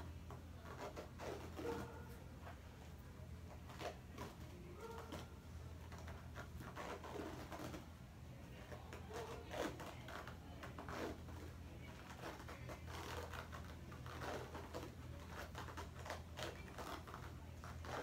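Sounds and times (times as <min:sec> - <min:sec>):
bandage wrap crackling and rustling: 0:00.0 - 0:18.0
low room hum: 0:00.0 - 0:18.0.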